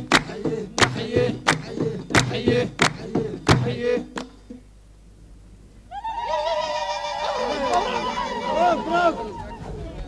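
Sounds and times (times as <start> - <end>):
hand clap: 0.0 - 3.6
women ululating: 5.9 - 10.0.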